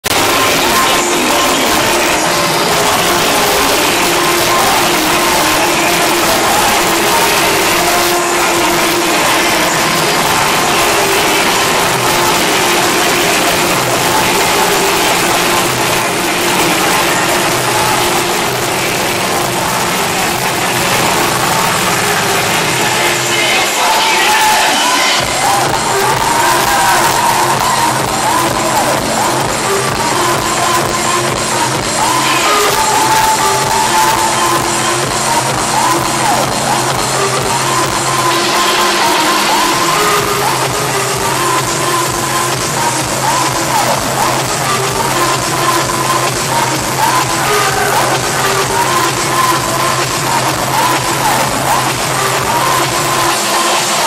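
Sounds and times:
crowd voices and cheering: 0.0 - 54.0
electronic dance music over pa: 0.0 - 54.0.

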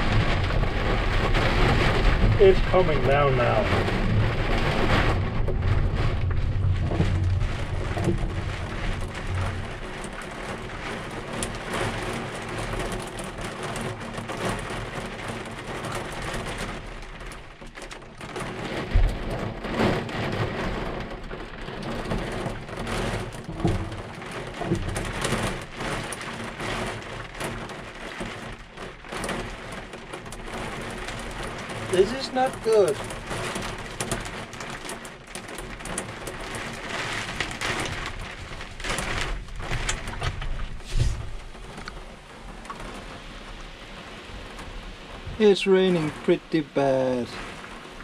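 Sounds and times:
hard rain on cab roof: 0.0 - 48.0.

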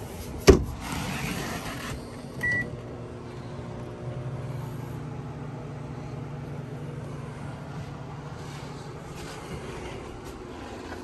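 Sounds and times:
microwave oven humming: 0.0 - 11.0
microwave keypad beep: 2.4 - 2.7.

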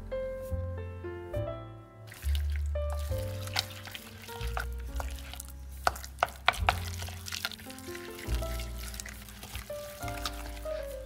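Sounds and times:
background music with bass: 0.0 - 11.0
spoon beating dough in saucepan: 2.1 - 11.0.

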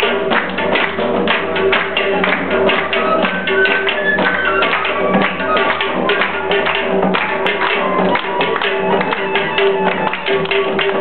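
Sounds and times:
rapid hand-clapping: 0.0 - 11.0
folk melody over a drone: 1.2 - 11.0.

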